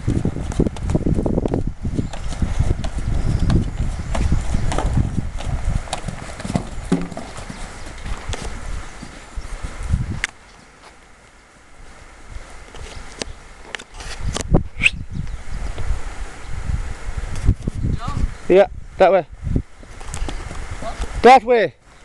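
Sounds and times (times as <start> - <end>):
horse hoofbeats on sand: 0.0 - 9.9.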